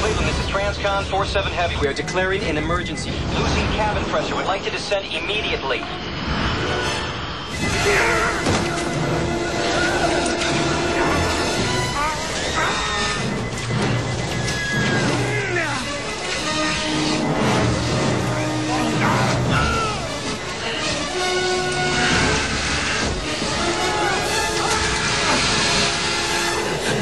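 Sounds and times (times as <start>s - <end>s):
rushing air roar: 0.0s - 12.6s
heavy low rumble: 0.0s - 26.3s
dramatic film music: 0.0s - 27.0s
debris clattering: 7.5s - 27.0s.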